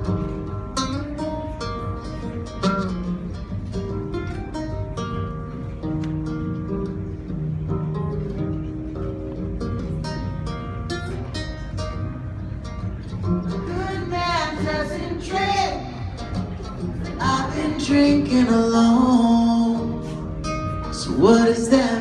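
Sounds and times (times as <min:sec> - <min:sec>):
acoustic guitar playing: 0:00.0 - 0:22.0
man singing: 0:17.2 - 0:20.2, 0:20.8 - 0:22.0.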